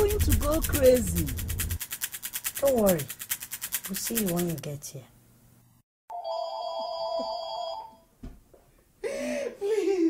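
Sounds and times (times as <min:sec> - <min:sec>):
electronic telephone ringing: 0:06.1 - 0:08.0.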